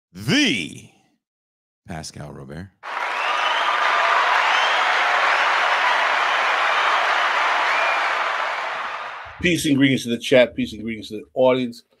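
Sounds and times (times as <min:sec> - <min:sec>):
crowd applause: 0:02.8 - 0:09.6
crowd cheering: 0:02.8 - 0:09.8.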